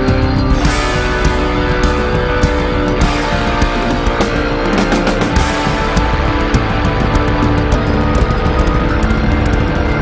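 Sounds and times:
bass and drums: 0.0s - 10.0s
distorted electric guitar: 0.0s - 10.0s.

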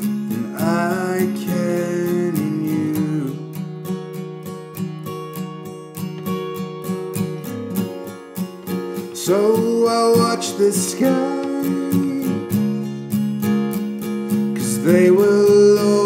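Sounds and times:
man singing: 0.0s - 3.8s, 9.0s - 12.8s, 14.5s - 16.0s
acoustic guitar strumming: 0.0s - 16.0s.

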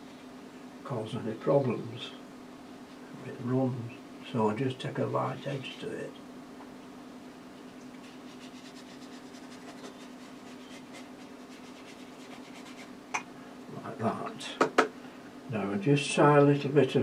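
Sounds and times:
steady low hum: 0.0s - 17.0s
paintbrush scratching on paper: 8.0s - 12.9s.

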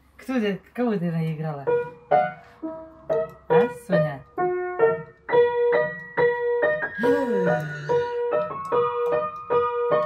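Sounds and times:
bouncing piano notes: 1.6s - 10.0s.

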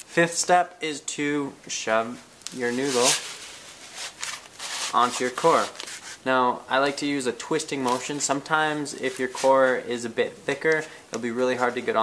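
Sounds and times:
foam scratching friction: 2.6s - 6.2s.

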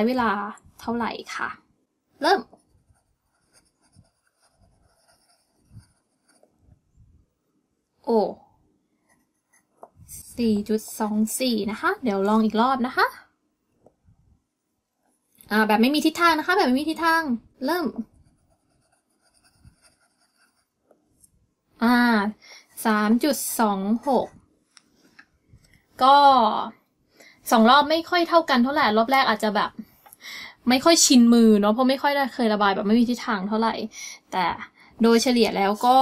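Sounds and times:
pencil scribbling on paper: 2.4s - 6.6s, 17.8s - 20.8s.

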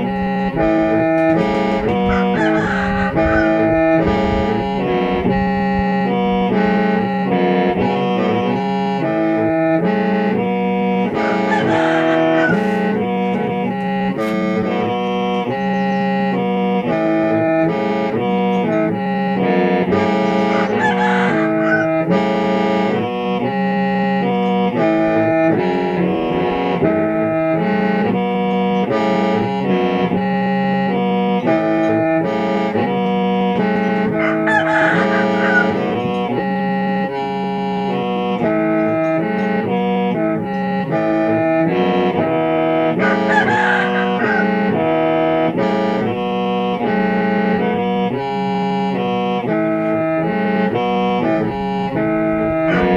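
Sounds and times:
low reed drone: 0.0s - 52.9s
mouth organ melody: 0.0s - 52.9s.

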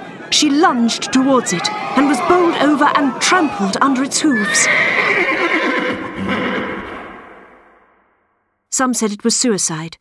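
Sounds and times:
horse whinnying: 4.2s - 7.7s.

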